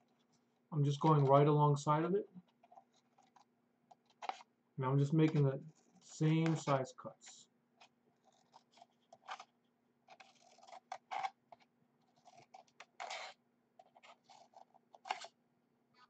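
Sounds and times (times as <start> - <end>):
scissors snipping paper: 10.1 - 15.3.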